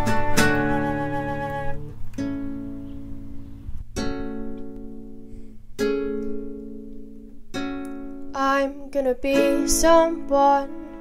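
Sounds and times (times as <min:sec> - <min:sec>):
ukulele chords strummed: 0:00.0 - 0:02.9.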